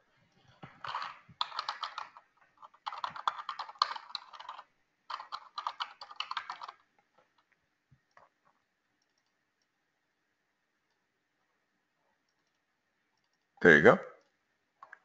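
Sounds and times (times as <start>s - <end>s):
typing on computer keyboard: 0.7s - 6.8s.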